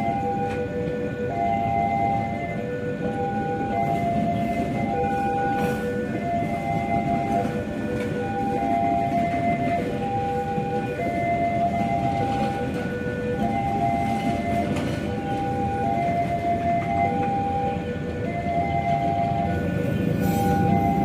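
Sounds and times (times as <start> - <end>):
train rumbling past: 0.0 - 21.0.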